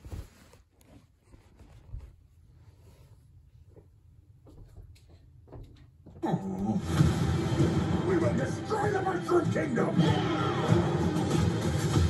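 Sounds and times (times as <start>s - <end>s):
faint clicks and rustles: 0.0s - 6.0s.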